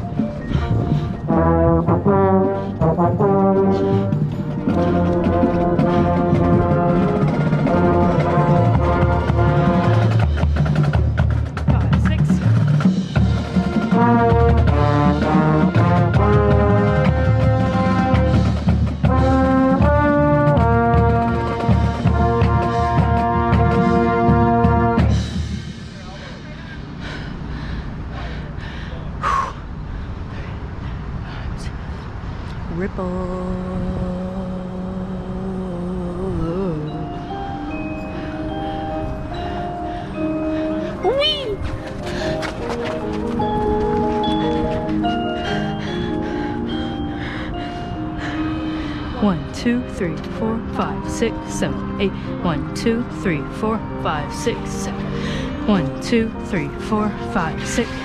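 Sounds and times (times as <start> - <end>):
marching band brass chords: 0.0 - 27.0, 41.6 - 46.7
steady percussion pulse: 0.0 - 27.2, 35.0 - 58.0
trombone: 1.2 - 10.8, 13.0 - 25.6.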